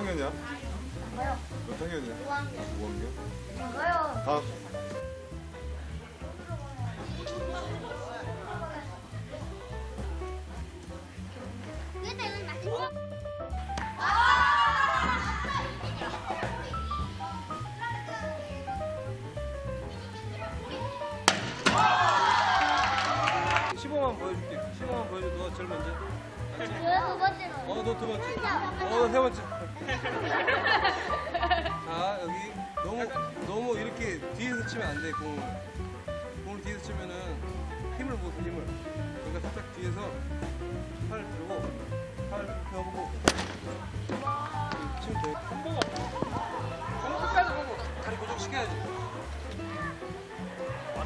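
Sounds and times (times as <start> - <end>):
background music: 0.0 - 51.0
baseball smack: 13.7 - 14.0, 21.2 - 22.2, 43.2 - 46.4
children shouting and cheering: 13.9 - 18.8, 19.9 - 23.8, 46.1 - 48.1, 48.7 - 51.0
bat cracking ball: 21.2 - 22.1, 43.2 - 46.4.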